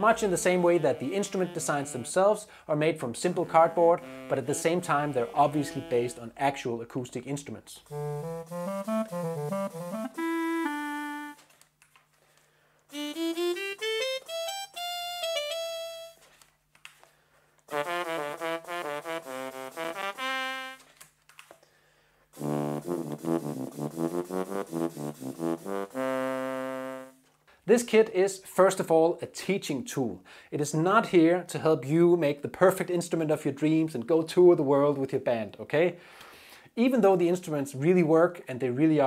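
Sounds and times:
synth clarinet melody: 0.0s - 2.4s, 3.2s - 6.5s, 7.8s - 11.4s, 12.9s - 16.2s, 17.7s - 20.9s, 22.4s - 27.2s
synth trombone melody: 0.0s - 2.4s, 3.1s - 6.4s, 7.8s - 11.4s, 12.9s - 16.2s, 17.7s - 20.8s, 22.4s - 27.2s
synth trumpet melody: 0.0s - 2.4s, 3.1s - 6.6s, 7.8s - 11.4s, 12.9s - 16.2s, 17.7s - 20.9s, 22.4s - 27.2s.

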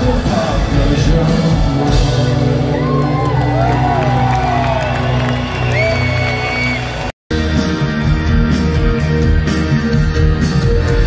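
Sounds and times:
live rock band: 0.0s - 11.0s
crowd cheering and whooping: 2.4s - 7.2s.

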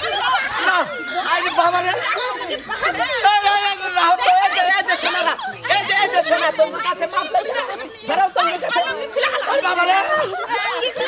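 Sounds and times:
women talking over one another: 0.0s - 11.0s.

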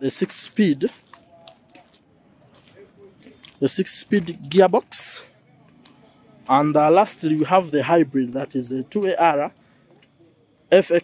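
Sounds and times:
faint background ambience: 0.0s - 11.0s.

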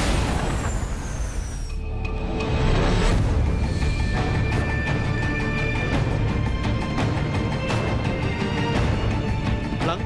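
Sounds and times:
theme music: 1.7s - 10.0s.

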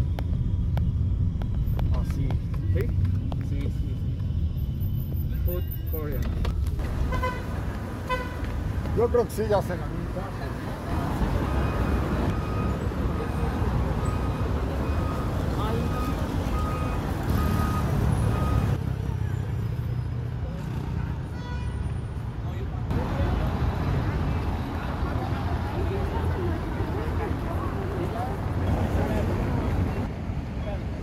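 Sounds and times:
traffic rumble: 0.0s - 31.0s
short beeps: 11.6s - 18.8s.

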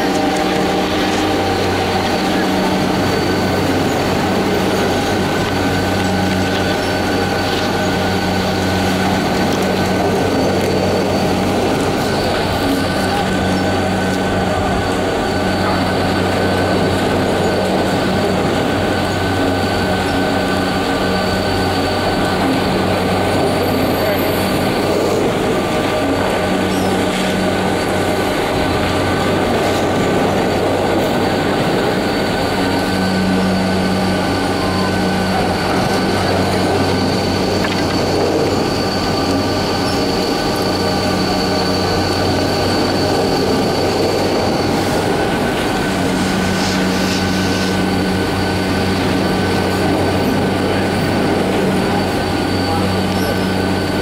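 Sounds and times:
chairlift machinery whine and hum: 0.0s - 54.0s.

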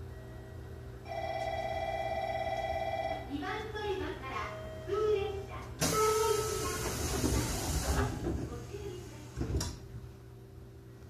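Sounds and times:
electronic departure bell: 0.2s - 3.3s, 4.4s - 5.2s
train low hum: 2.8s - 10.9s.

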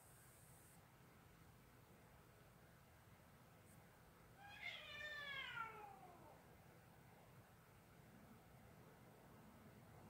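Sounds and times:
cat meowing: 4.4s - 6.4s.

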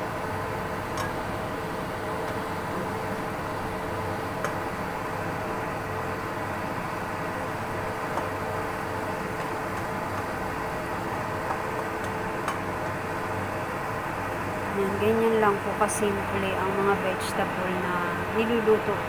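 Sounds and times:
broth bubbling and hissing in a wok: 0.0s - 19.0s
faint hum: 0.0s - 19.0s.

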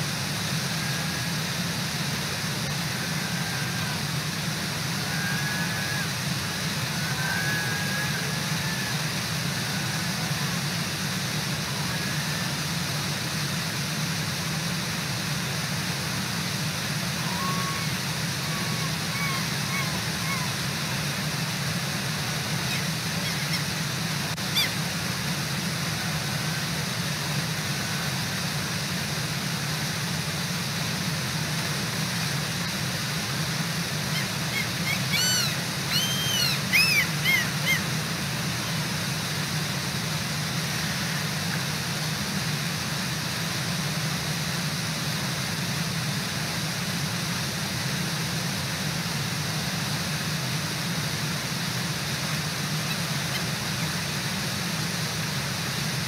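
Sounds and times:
waterfall rushing: 0.0s - 56.0s
bird calling: 0.6s - 12.7s, 17.0s - 25.1s, 33.8s - 39.2s.

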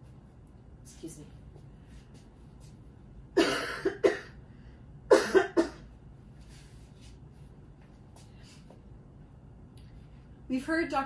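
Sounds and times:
woman coughing: 3.4s - 4.4s, 5.1s - 5.9s.

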